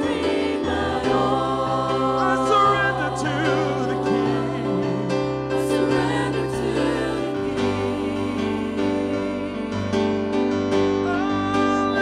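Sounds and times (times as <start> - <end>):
choir singing worship song: 0.0 - 12.0
keyboard: 0.0 - 12.0.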